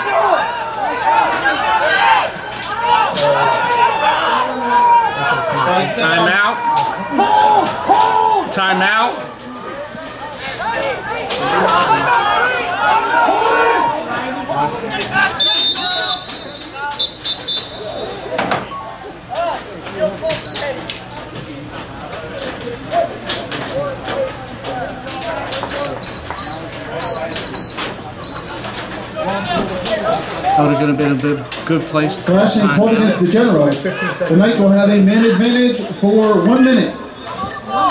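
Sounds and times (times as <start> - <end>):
high-pitched electronic beeps: 18.7 - 19.2.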